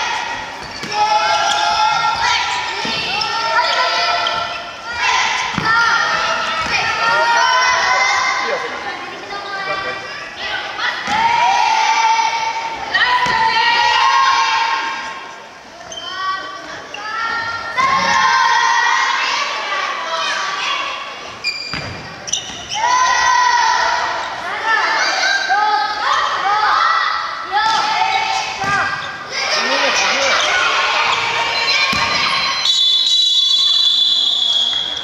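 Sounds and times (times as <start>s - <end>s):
children shouting and cheering: 0.0s - 15.3s, 16.1s - 21.2s, 22.7s - 32.7s.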